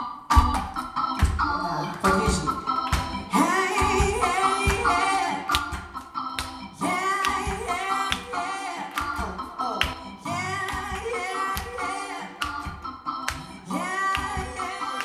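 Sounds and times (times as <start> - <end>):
hand claps: 0.3 - 15.0
woman singing: 3.3 - 5.7, 6.8 - 12.8, 13.6 - 15.0.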